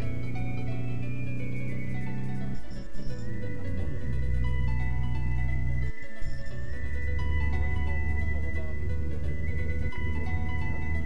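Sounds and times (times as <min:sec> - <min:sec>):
music with long held notes: 0:00.0 - 0:11.0
steady deep bass: 0:00.0 - 0:11.0.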